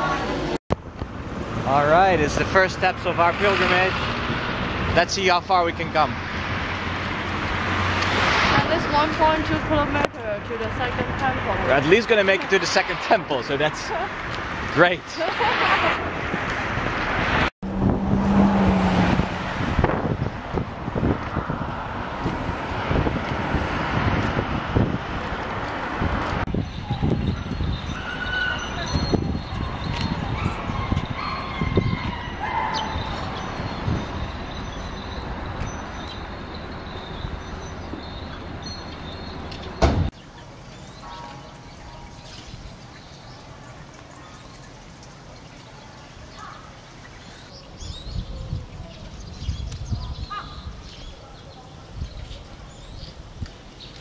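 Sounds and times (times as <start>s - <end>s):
traffic noise: 0.0s - 54.0s
wind rumble on microphone: 15.4s - 38.2s, 47.6s - 51.2s, 51.8s - 54.0s.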